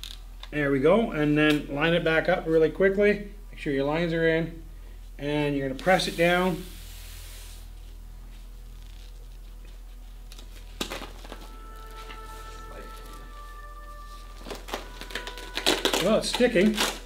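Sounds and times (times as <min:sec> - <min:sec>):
low room hum: 0:00.0 - 0:17.0
soft background music: 0:08.1 - 0:17.0.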